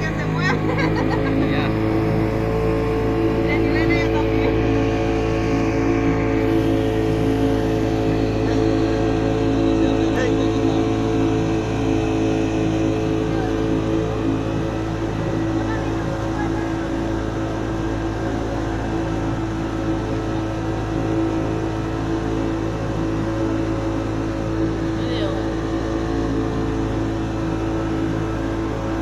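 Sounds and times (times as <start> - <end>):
outboard motor running: 0.0 - 29.0
water rushing along hull: 0.0 - 29.0.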